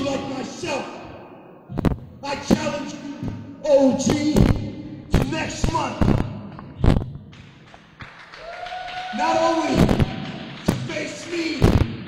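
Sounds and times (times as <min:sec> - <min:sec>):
man speaking into a microphone: 0:00.0 - 0:01.2, 0:02.2 - 0:06.5, 0:09.1 - 0:12.0
low room noise: 0:00.0 - 0:12.0.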